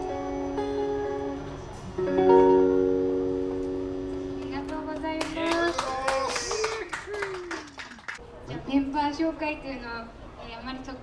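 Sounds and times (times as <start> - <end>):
acoustic guitar chord ringing: 0.0 - 5.1
audience clapping: 4.1 - 8.2
voices over applause: 5.0 - 8.2.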